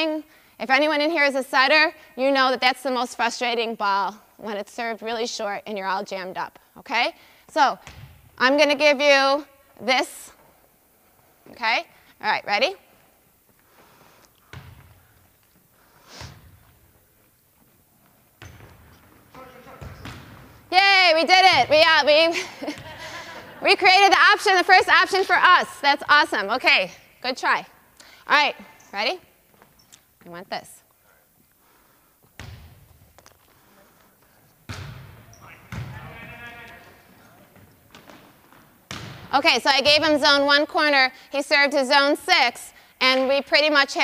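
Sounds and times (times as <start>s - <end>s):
volleyball hits: 7.5s - 8.8s, 14.5s - 15.1s, 18.3s - 24.2s, 32.2s - 33.4s, 34.6s - 40.4s
thud echoing in gymnasium: 7.7s - 8.4s, 18.4s - 22.0s, 32.4s - 32.9s, 34.7s - 36.3s, 38.8s - 40.2s.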